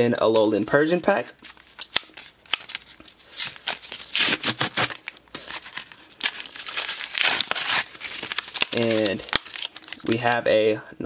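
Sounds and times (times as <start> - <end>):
blister packaging crinkling: 1.4 - 10.5.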